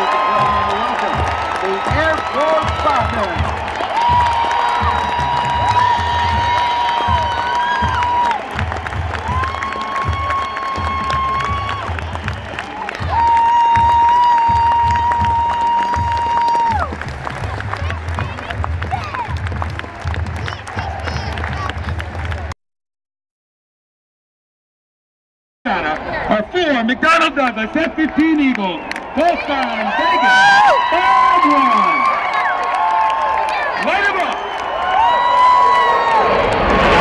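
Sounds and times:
crowd cheering: 0:00.0 - 0:22.6, 0:25.7 - 0:37.0.

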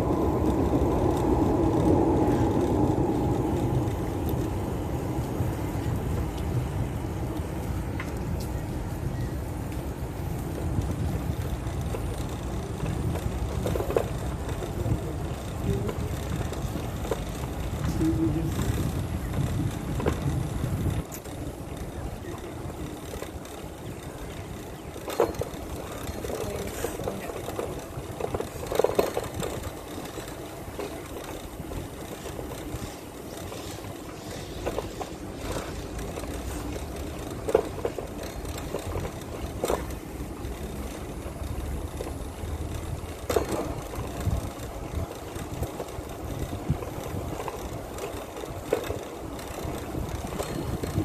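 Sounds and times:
bicycle rumbling on concrete: 0:00.0 - 0:51.0.

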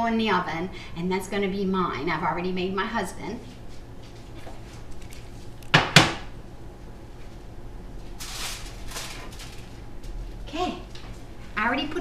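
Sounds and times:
rustling: 0:08.0 - 0:10.3.

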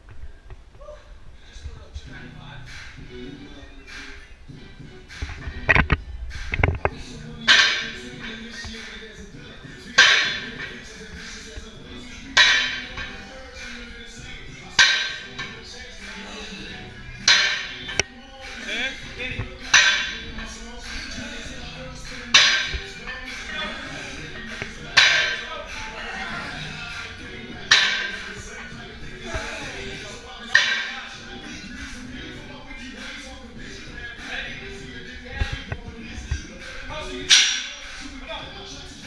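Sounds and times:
background music: 0:00.0 - 0:39.0
weight plates clanking on floor: 0:09.9 - 0:10.8, 0:12.4 - 0:13.3, 0:19.4 - 0:21.5, 0:30.4 - 0:31.1.

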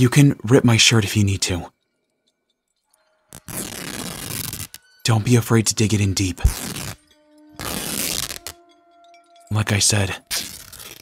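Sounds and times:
cloth tearing: 0:03.3 - 0:04.8, 0:06.4 - 0:07.0, 0:07.6 - 0:08.6, 0:10.3 - 0:11.0.

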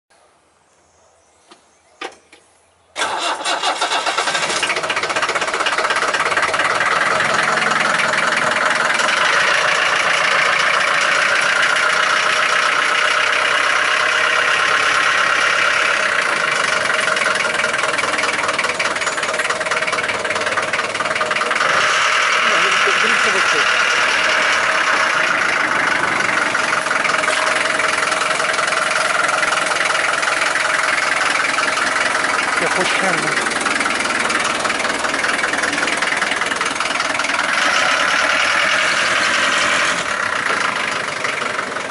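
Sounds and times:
car engine starting and running: 0:03.0 - 0:41.9.

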